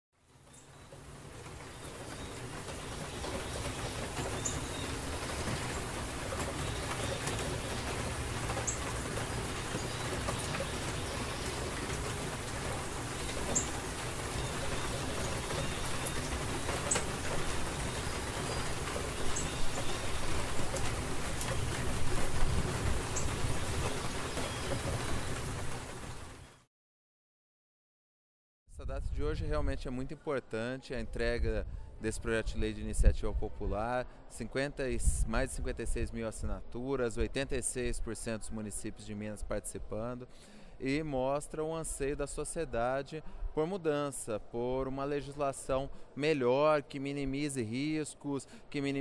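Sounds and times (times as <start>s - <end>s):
rain-like rushing noise: 0.2s - 26.7s.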